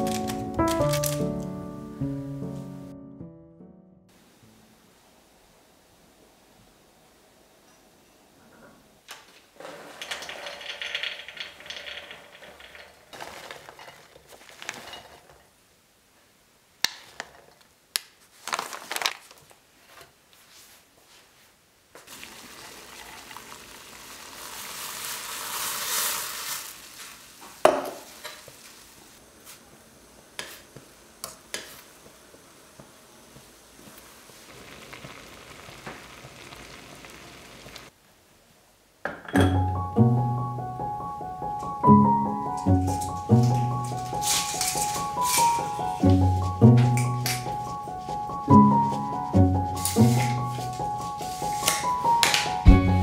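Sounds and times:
pearls boiling in a saucepan: 0:09.5 - 0:17.8, 0:21.9 - 0:38.0, 0:42.8 - 0:52.3.

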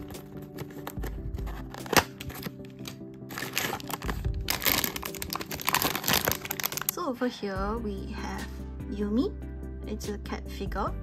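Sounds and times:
background music: 0:00.0 - 0:11.0
cardboard box snapping open: 0:00.6 - 0:06.9
foil wrapping crinkling and tearing: 0:00.6 - 0:07.0.

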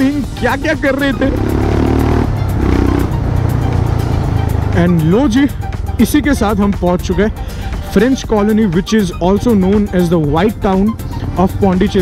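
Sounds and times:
background music: 0:00.0 - 0:12.0
motorcycle engine rumbling: 0:00.0 - 0:12.0.

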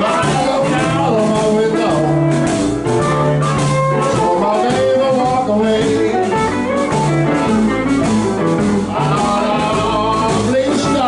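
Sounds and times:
live blues band playing: 0:00.0 - 0:11.0
amplified blues harmonica: 0:01.8 - 0:10.9.

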